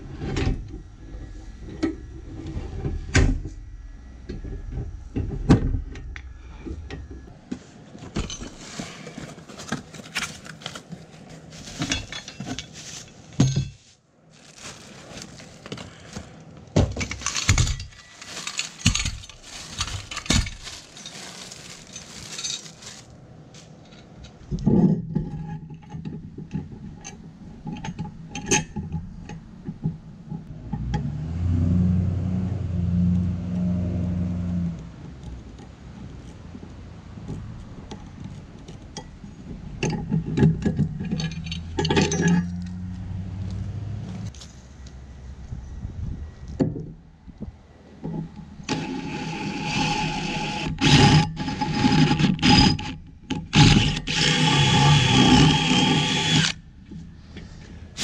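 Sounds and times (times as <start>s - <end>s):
low steady hum: 0.0s - 49.0s
drill boring through steel: 53.5s - 56.6s.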